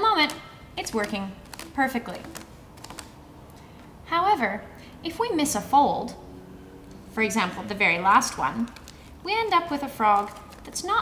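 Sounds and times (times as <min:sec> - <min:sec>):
paper clicks and taps on tabletop: 0:00.2 - 0:03.1.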